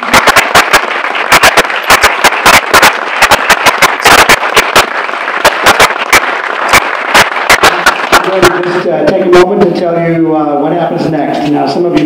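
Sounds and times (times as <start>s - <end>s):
audience applauding: 0.0s - 8.8s
sharp individual claps: 0.0s - 9.2s.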